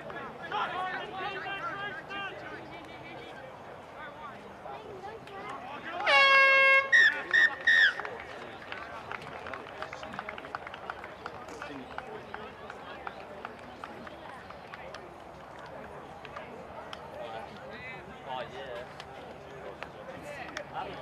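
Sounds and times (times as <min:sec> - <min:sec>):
faint voices: 0:00.0 - 0:21.0
horn blasts: 0:06.0 - 0:08.0.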